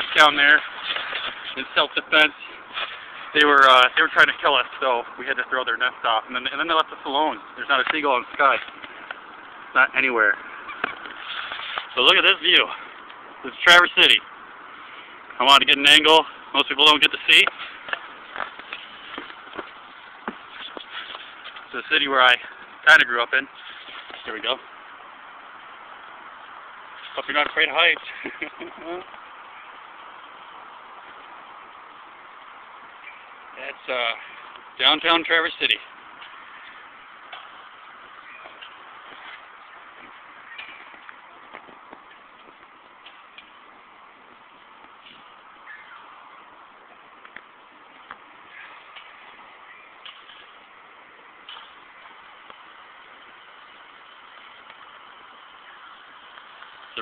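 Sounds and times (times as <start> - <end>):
distant traffic: 0.0 - 57.0
outdoor background noise: 0.0 - 57.0.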